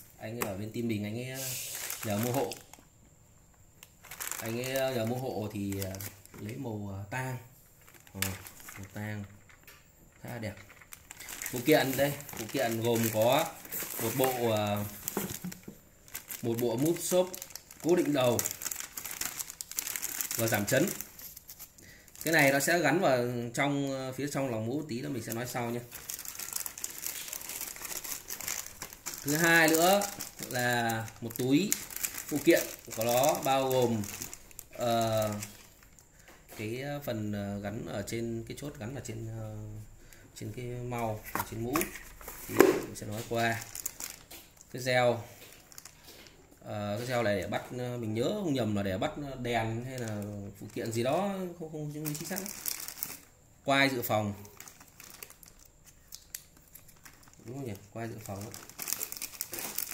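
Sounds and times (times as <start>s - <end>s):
plastic packaging crinkling: 1.4s - 2.9s, 3.7s - 6.6s, 7.6s - 23.2s, 24.2s - 36.3s, 41.1s - 47.4s, 49.6s - 59.9s
bubble wrap rustling: 1.4s - 3.0s, 3.7s - 6.9s, 7.6s - 9.5s, 10.2s - 36.3s, 41.0s - 47.6s, 49.5s - 59.9s.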